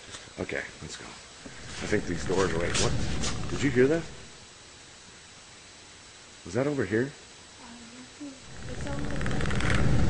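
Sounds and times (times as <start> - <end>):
faint recording hiss: 0.0 - 10.0.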